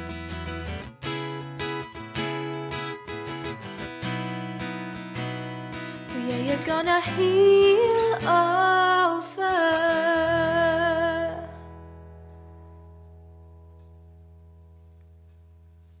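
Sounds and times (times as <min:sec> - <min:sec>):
acoustic guitar: 0:00.0 - 0:16.0
woman singing: 0:06.1 - 0:11.7.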